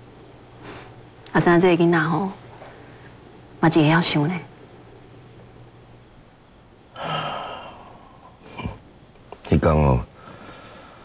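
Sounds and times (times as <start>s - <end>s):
person sighing: 7.0s - 8.8s.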